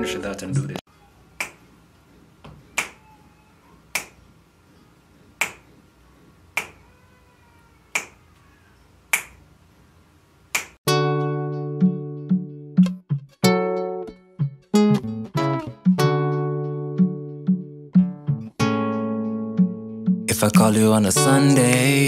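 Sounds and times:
finger snaps: 1.4 - 1.6, 2.8 - 3.0, 3.9 - 4.2, 5.4 - 5.7, 6.6 - 6.8, 7.9 - 8.2, 9.1 - 9.4, 10.5 - 10.8
acoustic guitar plucked chords: 10.9 - 22.0.

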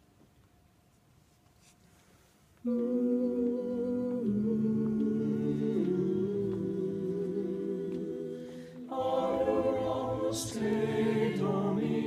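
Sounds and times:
slow meditative chant: 2.6 - 12.0.

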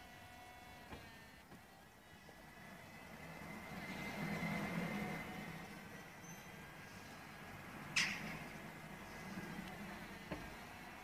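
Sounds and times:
roof pump whining: 0.0 - 11.0.

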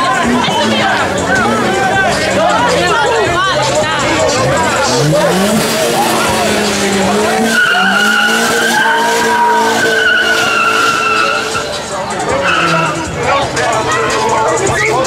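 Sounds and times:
car engine revving: 0.0 - 15.0
crowd shouting: 0.0 - 15.0
tyres squealing: 0.0 - 15.0.

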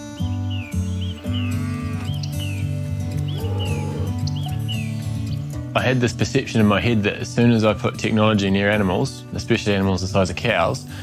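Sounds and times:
background music with bass line: 0.0 - 11.0
cow mooing: 1.4 - 2.2, 3.2 - 4.3.

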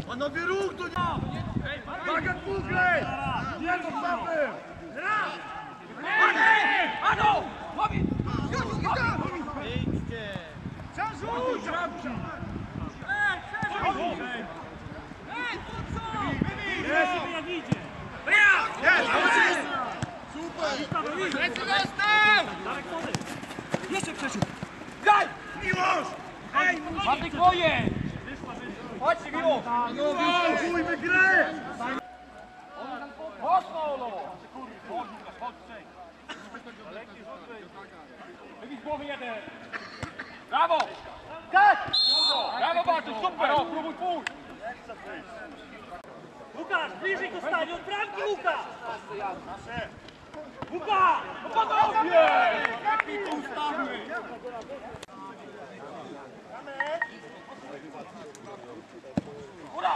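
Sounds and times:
men shouting: 18.2 - 23.2.

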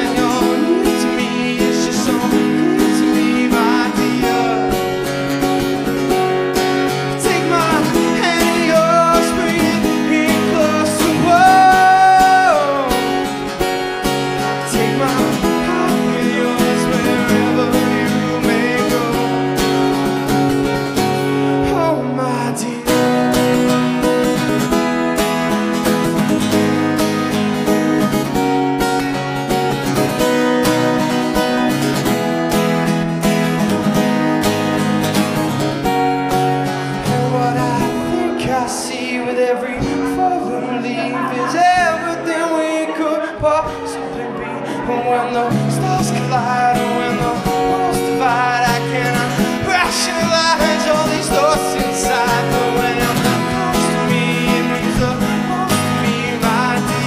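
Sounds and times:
acoustic guitar strumming: 0.0 - 57.0
man singing a long note: 7.1 - 13.3, 37.1 - 57.0.

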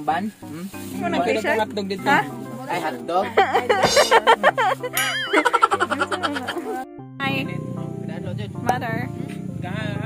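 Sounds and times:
background music: 0.0 - 10.0
people talking and laughing: 0.6 - 8.5.

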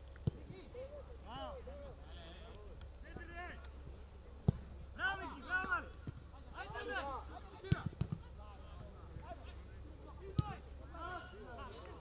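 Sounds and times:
distant shouts of footballers: 4.9 - 12.0.

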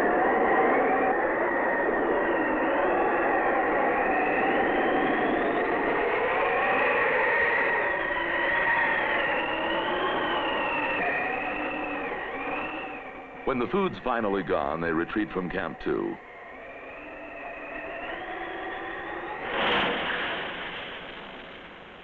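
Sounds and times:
howling storm wind: 0.0 - 22.0.

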